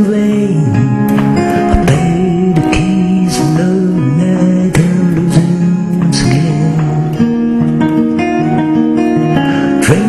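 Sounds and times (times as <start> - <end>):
acoustic guitar playing: 0.0 - 10.0.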